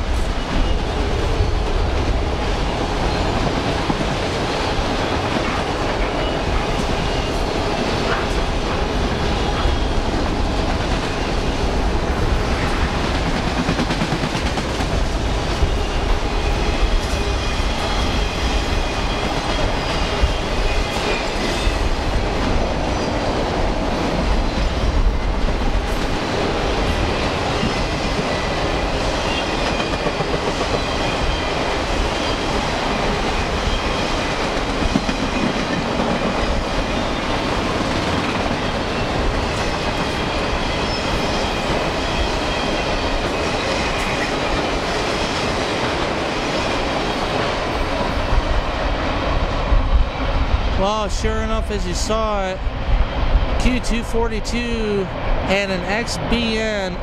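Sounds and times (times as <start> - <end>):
freight train rumbling past: 0.0 - 57.0.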